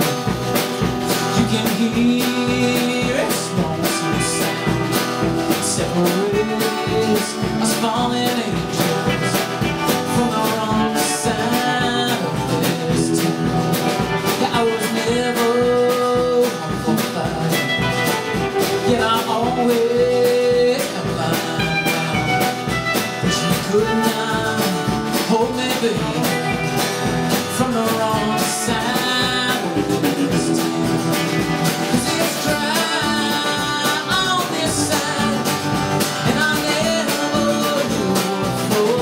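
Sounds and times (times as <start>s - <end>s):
bass guitar: 0.0s - 39.0s
electric guitar: 0.0s - 39.0s
steady drum beat: 0.0s - 39.0s
strummed acoustic guitar: 0.0s - 39.0s.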